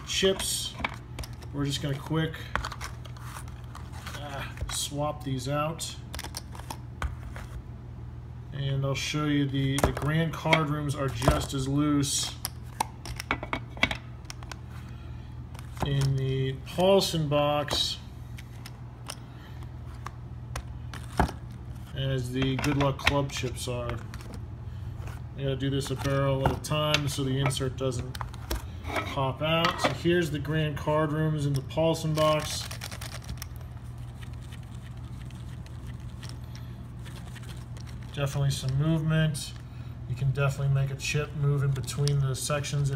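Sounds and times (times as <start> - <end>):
steady low hum: 0.0 - 42.9
poker chips clicking and rattling: 32.2 - 36.4.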